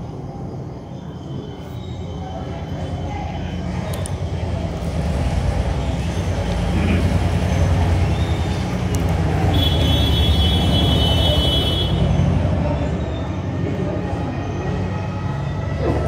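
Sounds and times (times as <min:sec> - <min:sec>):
passing vehicle engine rumble: 0:01.2 - 0:16.0.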